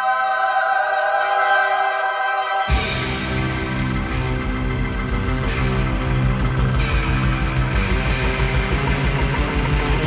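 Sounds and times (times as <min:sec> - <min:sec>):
psychedelic rock band playing: 0:01.2 - 0:10.0.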